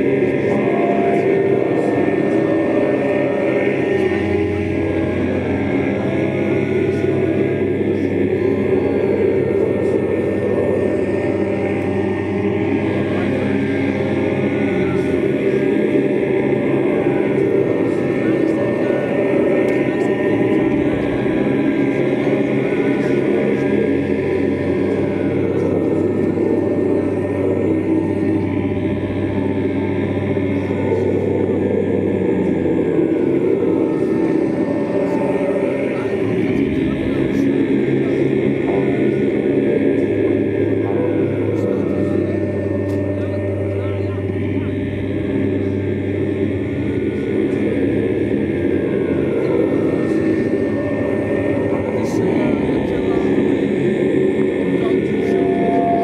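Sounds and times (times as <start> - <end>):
chant-like singing: 0.0 - 56.0
electric guitar drone: 0.0 - 56.0.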